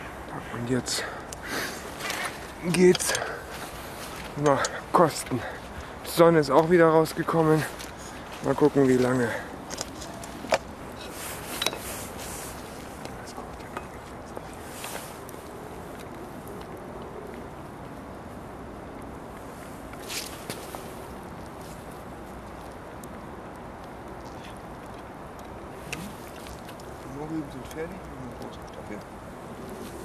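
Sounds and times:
outdoor background noise: 0:00.0 - 0:30.0.

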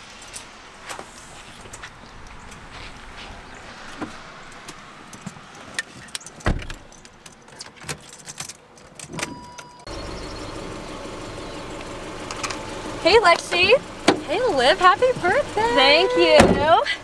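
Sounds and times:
car keys jingling: 0:05.6 - 0:16.8
car engine starting and idling: 0:09.3 - 0:17.0
car door shutting: 0:13.4 - 0:14.4, 0:15.0 - 0:16.8.

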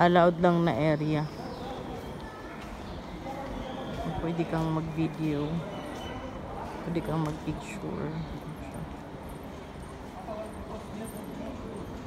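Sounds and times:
distant chatter: 0:00.0 - 0:12.0.

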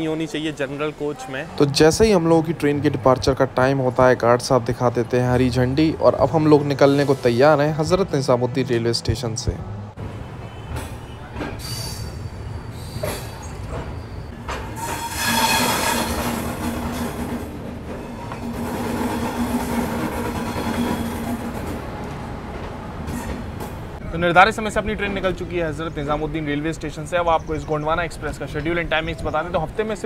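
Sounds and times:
train coach rolling: 0:00.0 - 0:30.0
steady squealing tone: 0:10.3 - 0:17.2.

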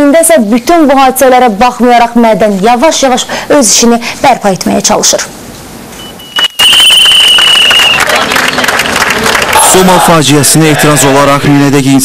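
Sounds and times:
shrill whistle blast: 0:06.0 - 0:08.1
street crowd noise: 0:06.3 - 0:11.8.

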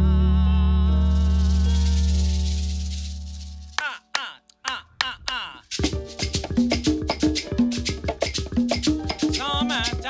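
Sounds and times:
hand percussion strikes: 0:05.0 - 0:10.0.

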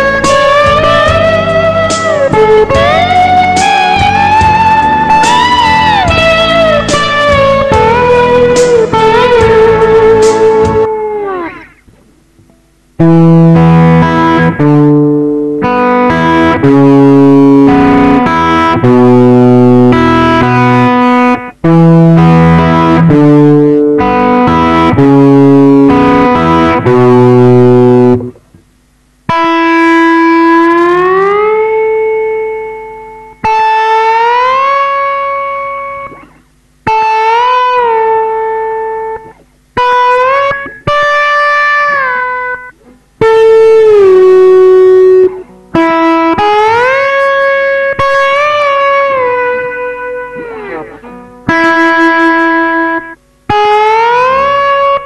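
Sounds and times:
slide electric guitar: 0:00.0 - 0:55.0.

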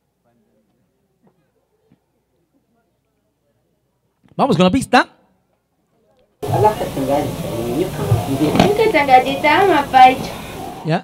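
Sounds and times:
people talking at once: 0:06.4 - 0:11.0
steady hiss: 0:06.4 - 0:11.0.

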